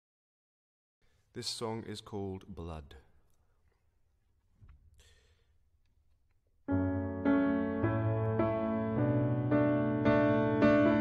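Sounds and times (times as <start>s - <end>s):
faint breath: 4.9s - 5.6s.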